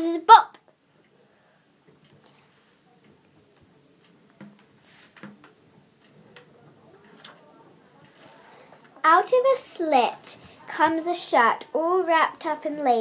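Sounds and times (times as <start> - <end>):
faint breath noises: 1.1 - 2.9, 8.0 - 9.0, 10.4 - 10.7.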